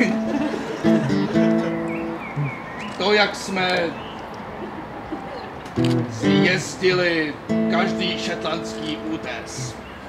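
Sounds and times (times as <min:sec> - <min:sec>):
soft acoustic guitar: 0:00.0 - 0:02.6, 0:05.8 - 0:06.9, 0:07.5 - 0:09.8
person speaking: 0:06.0 - 0:07.0.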